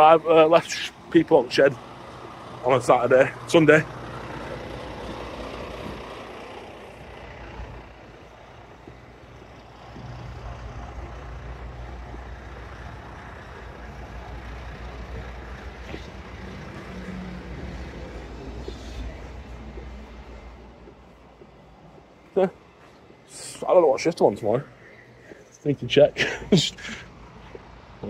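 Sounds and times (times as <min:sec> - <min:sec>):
bus diesel engine running: 0:00.0 - 0:28.0.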